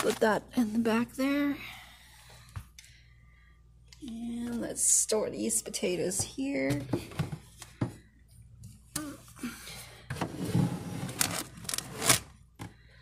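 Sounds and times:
basket scraping on shelf: 10.2 - 12.3
packages rustling: 11.0 - 12.3.

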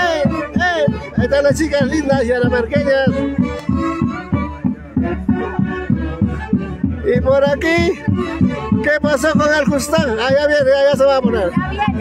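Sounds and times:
steady low beat: 0.0 - 12.0.

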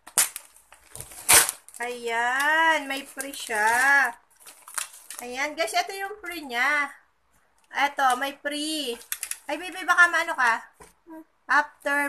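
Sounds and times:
plastic packaging ripping: 0.0 - 2.0, 2.8 - 5.4, 9.0 - 9.5.

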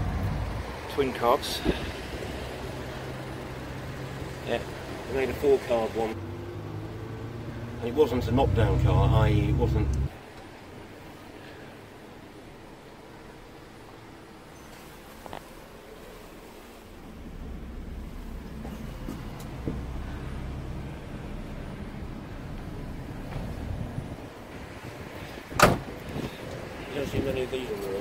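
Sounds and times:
faint low rumbling: 6.9 - 10.2
car door shutting with a thud: 25.5 - 26.0.

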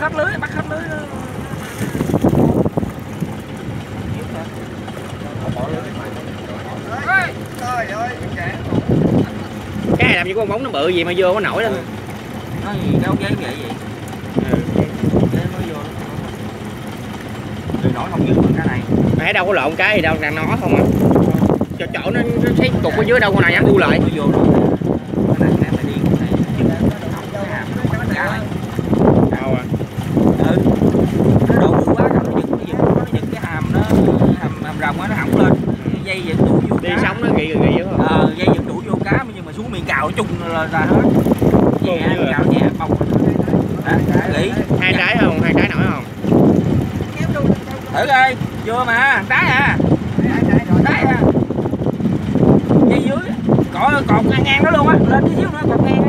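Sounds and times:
boat engine rumbling: 0.0 - 56.0
men talking and calling out: 0.0 - 56.0.

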